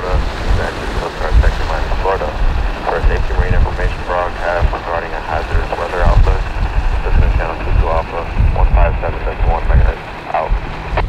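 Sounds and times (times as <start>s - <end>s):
man's voice over radio speaker: 0.0s - 11.0s
wind rumbling on microphone: 0.0s - 11.0s.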